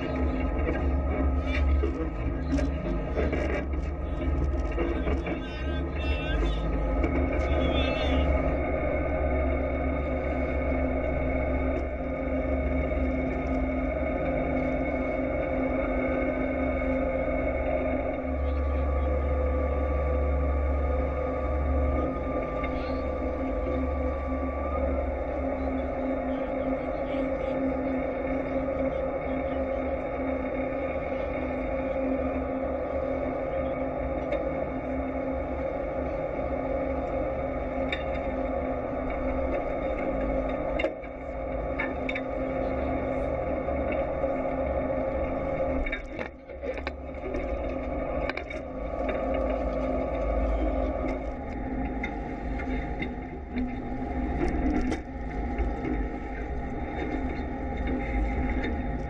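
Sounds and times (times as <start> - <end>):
boat engine droning: 0.0 - 59.0
sea: 0.0 - 59.0
wind: 0.0 - 59.0.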